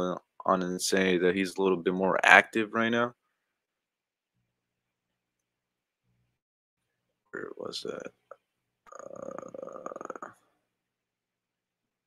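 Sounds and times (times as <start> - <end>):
man saying uhh: 7.4 - 8.1, 9.0 - 10.3.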